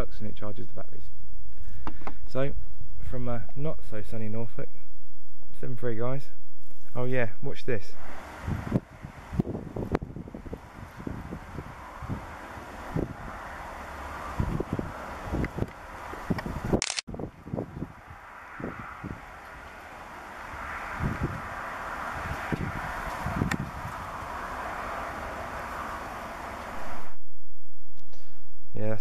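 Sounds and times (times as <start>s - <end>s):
aircraft rotor and engine drone: 8.0s - 27.2s.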